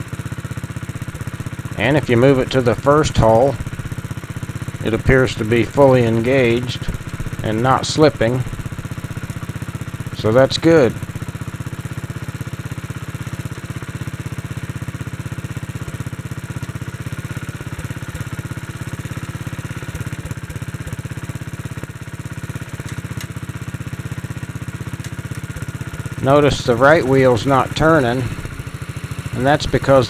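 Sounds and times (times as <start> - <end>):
single-cylinder engine running: 0.0 - 30.0.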